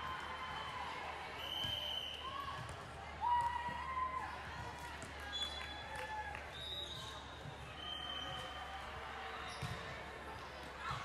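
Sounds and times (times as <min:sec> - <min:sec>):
sneaker squeaks: 0:09.4 - 0:09.8.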